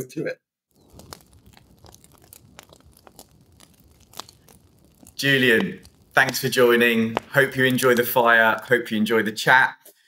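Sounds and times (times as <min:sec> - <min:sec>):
fire snaps and pops: 0:00.7 - 0:09.3
wood fire crackling: 0:00.7 - 0:09.3.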